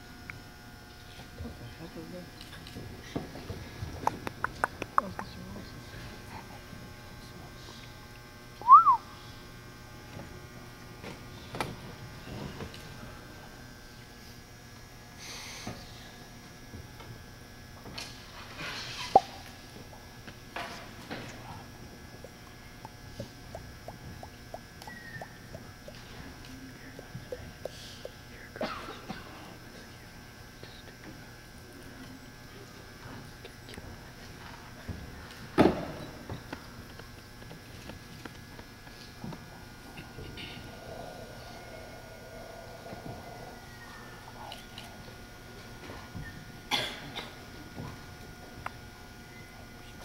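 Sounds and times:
falling high whistle: 8.6 - 9.1
person coughing: 28.6 - 29.5, 46.7 - 47.4.

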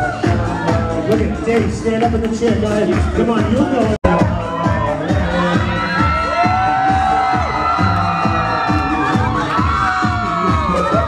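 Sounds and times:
crowd cheering and shouting: 0.0 - 2.0, 2.6 - 11.0
dance music: 0.0 - 11.0.

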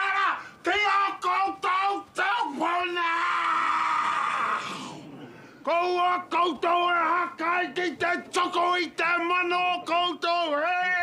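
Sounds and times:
man's long strained shout: 2.3 - 5.0.

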